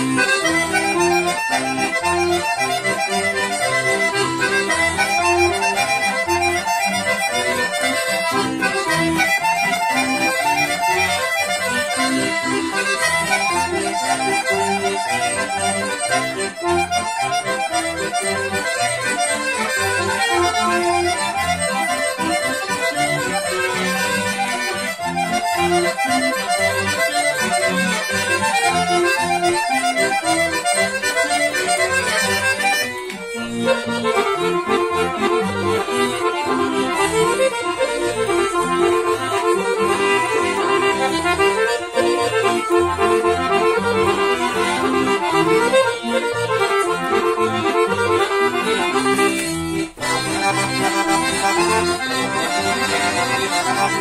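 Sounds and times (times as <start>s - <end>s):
accordion folk dance tune: 0.0s - 54.0s.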